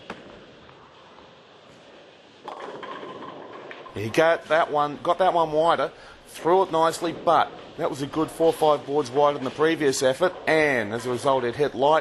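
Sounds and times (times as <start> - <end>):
bowling ball rolling: 0.0 - 11.8.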